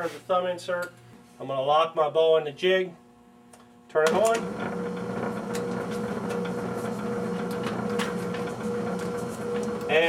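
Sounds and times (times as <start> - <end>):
drill press motor humming: 3.0 - 10.0.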